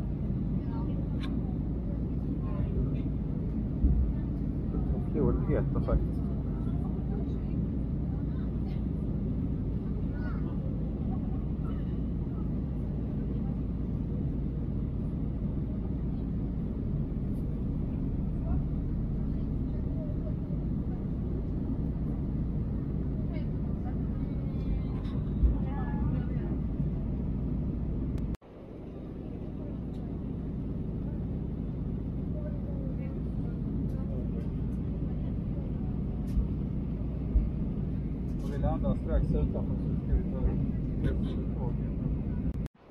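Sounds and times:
airliner cabin engine rumble: 0:00.0 - 0:42.9.

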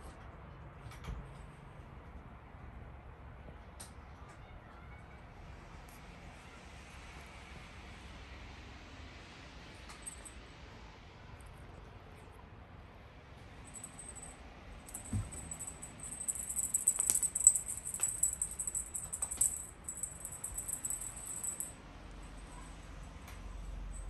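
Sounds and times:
toy jingling rattle: 0:13.7 - 0:14.3, 0:14.9 - 0:21.7
soft thump: 0:14.9 - 0:15.6.

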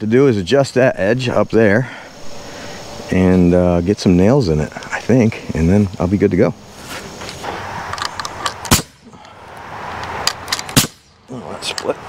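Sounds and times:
nail gun shot into wood: 0:08.7 - 0:09.0, 0:10.7 - 0:11.1.

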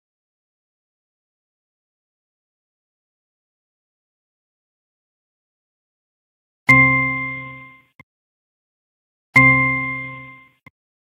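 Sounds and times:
bell-like ding: 0:06.7 - 0:08.0, 0:09.4 - 0:10.7.

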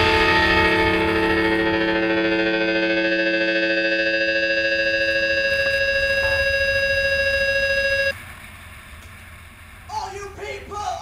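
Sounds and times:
distorted electric guitar chord: 0:00.0 - 0:08.1.

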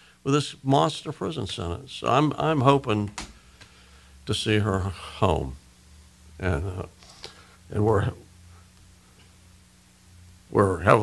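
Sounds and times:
low electrical hum: 0:00.0 - 0:11.0
man speaking: 0:00.3 - 0:03.2, 0:04.3 - 0:05.6, 0:06.4 - 0:07.0, 0:07.7 - 0:08.3, 0:10.5 - 0:11.0.

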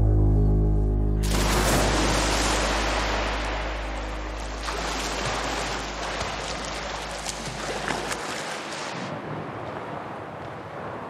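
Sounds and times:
low music drone: 0:00.0 - 0:08.3
water rushing and splashing: 0:01.2 - 0:11.0.

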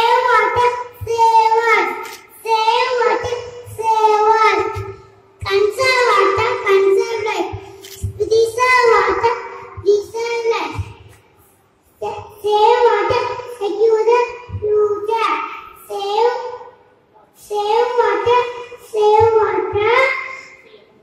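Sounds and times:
girl singing unaccompanied: 0:00.0 - 0:16.7, 0:17.3 - 0:21.0.

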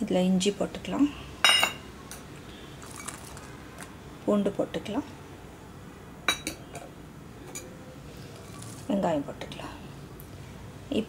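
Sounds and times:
metal spoon clinking on pot: 0:06.3 - 0:06.6.

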